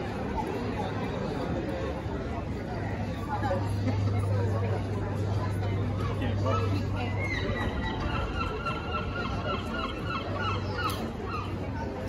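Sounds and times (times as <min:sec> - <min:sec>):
street background noise: 0:00.0 - 0:12.0.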